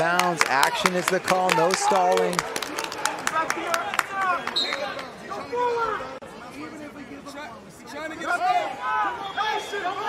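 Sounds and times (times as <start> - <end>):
arena crowd: 0.0 - 10.0
coaches and spectators shouting: 0.0 - 10.0.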